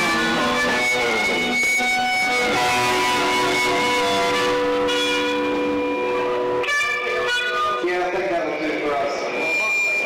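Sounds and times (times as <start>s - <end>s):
rock band sustained chord: 0.0s - 10.0s.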